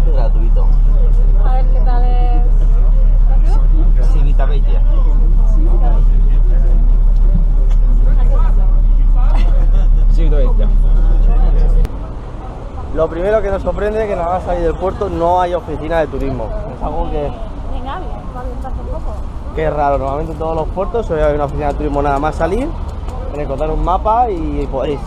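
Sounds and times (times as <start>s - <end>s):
bus engine rumble: 0.0s - 25.0s
passengers chattering: 0.0s - 25.0s.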